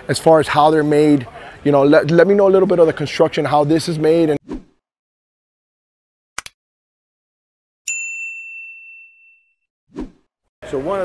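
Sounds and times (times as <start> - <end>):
notification bell ding: 7.9 - 9.6.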